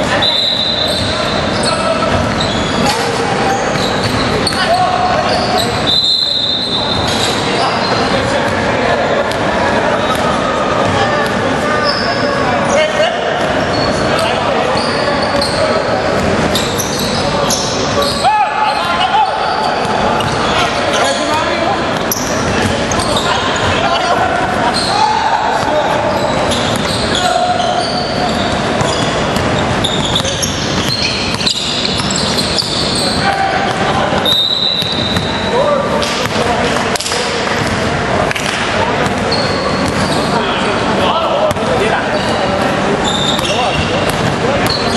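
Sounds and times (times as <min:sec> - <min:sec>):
players' voices: 0:00.0 - 0:44.9
sneaker squeaks: 0:00.0 - 0:44.9.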